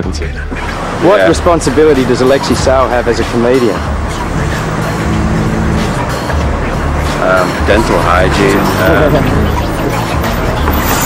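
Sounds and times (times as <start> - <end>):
background music: 0.0 - 11.0
vehicle engine running: 0.3 - 11.0.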